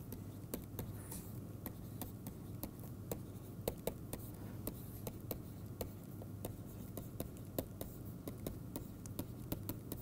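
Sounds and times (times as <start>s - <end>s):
stylus tapping and scratching on tablet: 0.0s - 10.0s.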